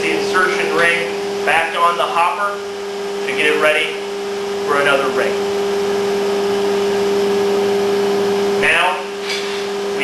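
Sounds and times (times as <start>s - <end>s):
mechanical hum: 0.0s - 10.0s.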